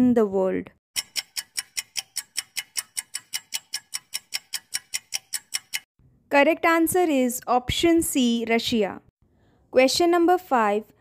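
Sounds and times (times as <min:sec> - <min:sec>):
rapid timer ticking: 0:00.9 - 0:05.9.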